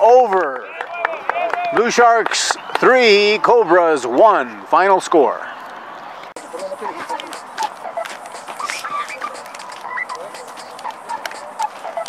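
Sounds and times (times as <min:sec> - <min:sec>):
children calling out: 0:06.6 - 0:12.0.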